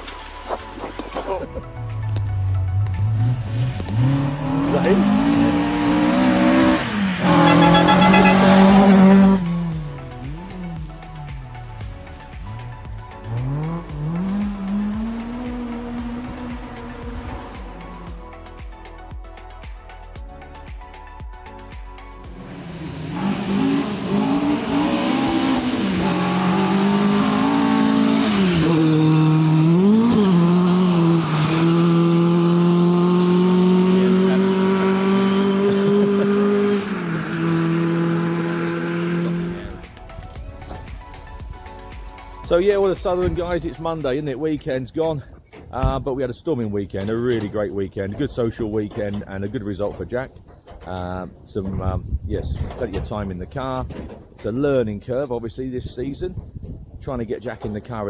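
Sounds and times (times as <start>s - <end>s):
rally car engine at high revs: 2.8s - 10.9s, 13.2s - 18.2s, 22.4s - 39.8s.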